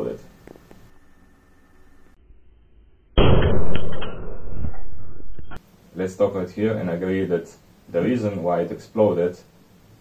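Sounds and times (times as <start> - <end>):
capacitor bursting with loud bang: 3.1 - 5.6.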